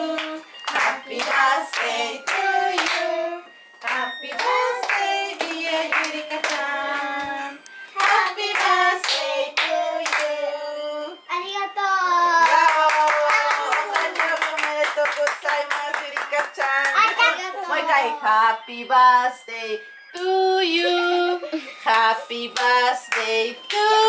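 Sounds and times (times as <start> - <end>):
group of people singing: 0.0 - 11.2, 17.7 - 24.0
hands clapping: 0.2 - 3.0, 3.8 - 6.7, 8.0 - 10.4, 12.4 - 17.3, 21.9 - 23.9.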